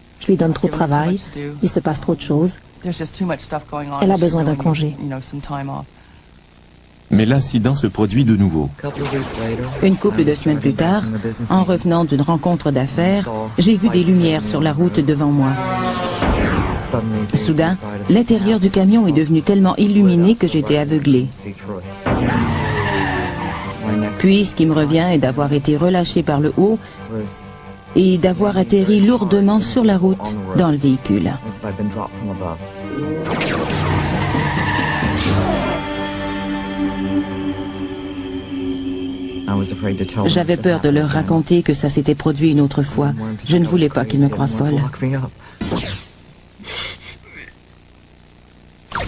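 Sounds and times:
faint low hum: 0:00.0 - 0:22.8, 0:23.5 - 0:34.4, 0:35.3 - 0:49.0
person breathing: 0:06.0 - 0:06.4, 0:26.8 - 0:27.1, 0:45.4 - 0:45.7
sustained musical tones: 0:07.1 - 0:45.1
sharp rush of noise: 0:08.8 - 0:10.6, 0:15.3 - 0:18.1, 0:33.0 - 0:40.9
loud rush of noise: 0:15.4 - 0:18.1
tyres skidding on road: 0:22.2 - 0:23.8, 0:34.0 - 0:35.6.

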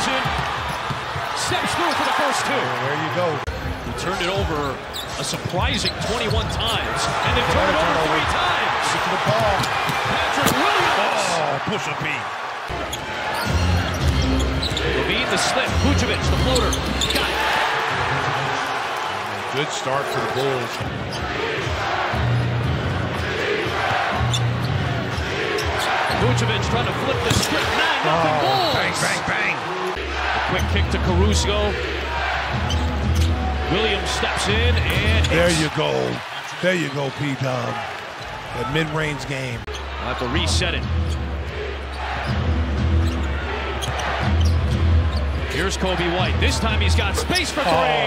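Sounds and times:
arena crowd noise: 0:00.0 - 0:48.0.

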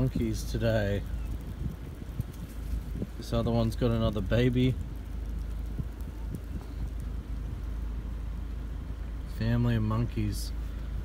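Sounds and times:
faint scattered ticks: 0:00.0 - 0:08.7
low outdoor rumble: 0:00.0 - 0:11.0.

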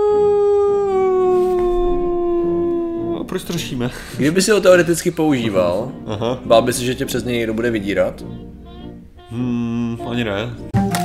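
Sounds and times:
high voice howling long note: 0:00.0 - 0:03.6.

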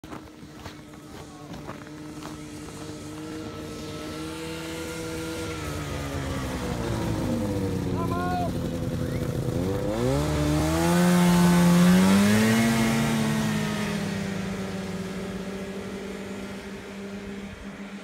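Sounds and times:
snowmobile engine accelerating past: 0:00.3 - 0:18.0.

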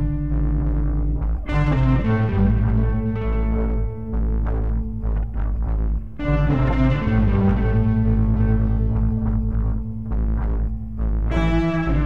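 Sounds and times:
low humming bass drone: 0:00.0 - 0:12.0.

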